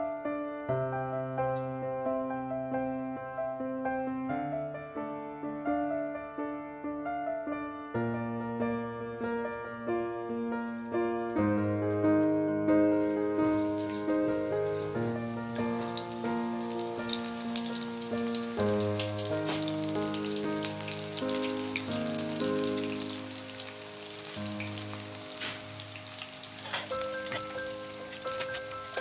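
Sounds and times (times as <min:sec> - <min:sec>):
keyboard music: 0:10.3 - 0:29.0
batter sizzling in hot oil: 0:13.0 - 0:29.0.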